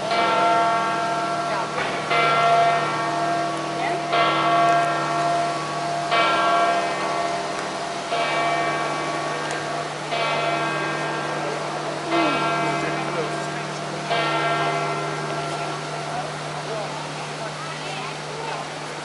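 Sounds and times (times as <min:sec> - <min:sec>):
large church bell tolling: 0:00.0 - 0:18.4
crowd murmur: 0:00.0 - 0:19.0.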